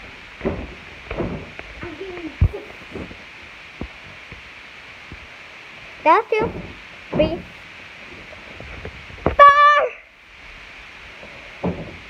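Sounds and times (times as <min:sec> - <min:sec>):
child squealing: 0:09.4 - 0:10.0.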